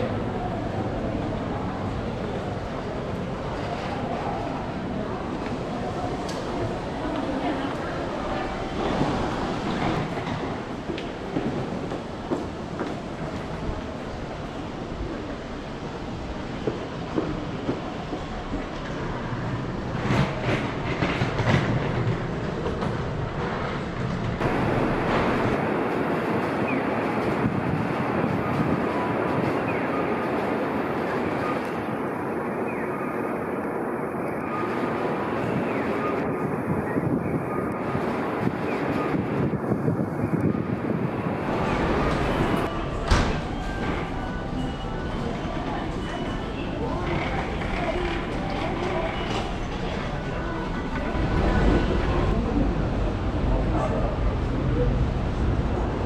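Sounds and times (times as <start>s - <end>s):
urban background rumble and hiss: 0.0s - 56.0s.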